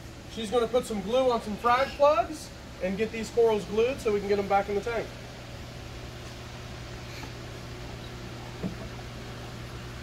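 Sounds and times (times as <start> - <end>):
hum and hiss of room equipment: 0.0 - 10.0
faint knock: 8.6 - 8.9.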